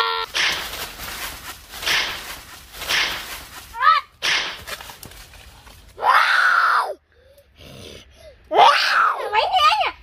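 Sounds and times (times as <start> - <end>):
boy roaring like a tiger: 6.0 - 7.0, 7.6 - 9.3
faint breath: 7.0 - 8.5.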